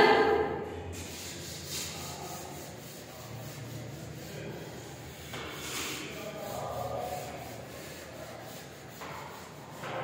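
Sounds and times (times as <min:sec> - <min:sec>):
duster rubbing on chalkboard: 0:00.9 - 0:10.0.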